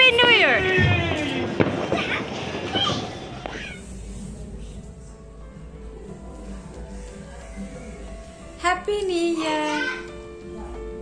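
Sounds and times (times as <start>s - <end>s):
people shouting and squealing: 0.0s - 3.8s
noisy background: 0.0s - 11.0s.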